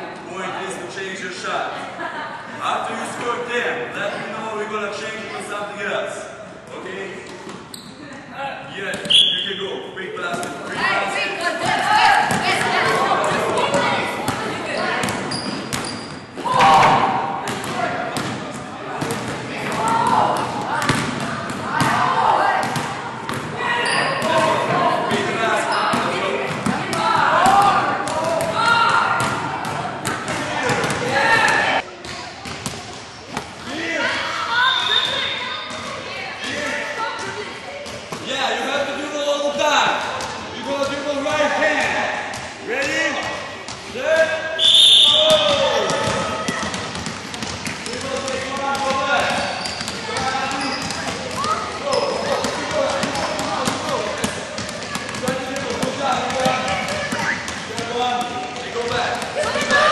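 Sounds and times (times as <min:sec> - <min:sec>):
voices talking in a hall: 0:00.0 - 0:59.9
basketballs bouncing on gym floor: 0:11.6 - 0:33.7, 0:40.0 - 0:41.0, 0:45.1 - 0:59.9.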